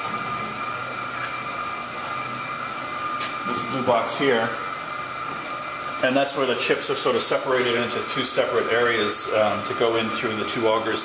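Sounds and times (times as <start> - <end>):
machine drone with high whine: 0.0 - 11.0.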